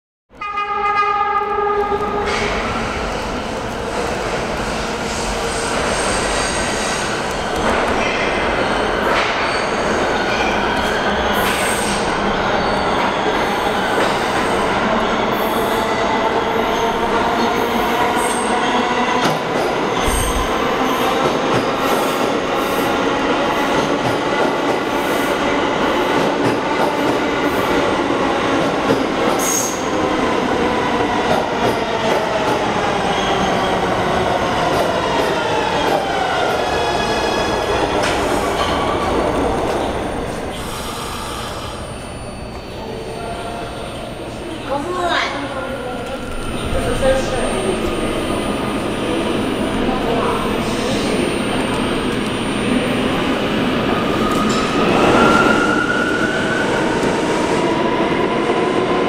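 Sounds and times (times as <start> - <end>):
subway train wheel and rail noise: 0.3 - 59.0.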